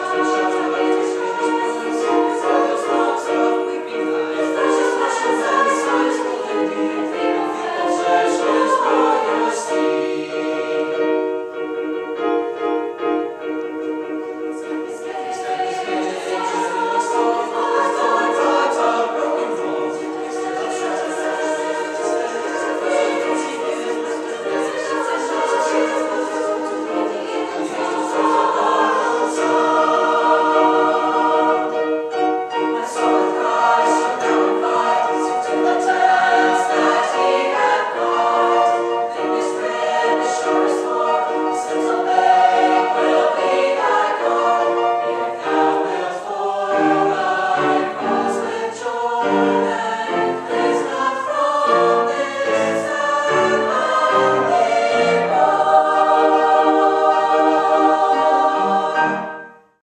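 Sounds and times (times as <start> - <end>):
mixed choir singing in parts: 0.0 - 59.8.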